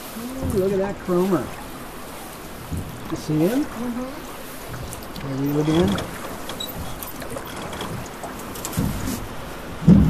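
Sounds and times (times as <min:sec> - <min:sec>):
river water around boat: 0:00.0 - 0:10.0
wind noise on microphone: 0:04.6 - 0:10.0.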